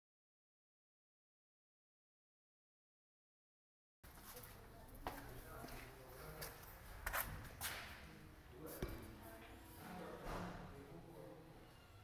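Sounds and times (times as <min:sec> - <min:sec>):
faint scuffs near microphone: 0:04.1 - 0:08.0.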